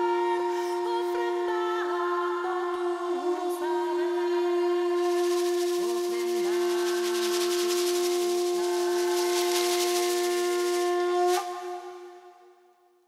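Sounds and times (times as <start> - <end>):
lower wavering tone: 0.0 - 12.5
conch shell horn blown: 0.0 - 12.8
rattling hiss: 3.6 - 12.2.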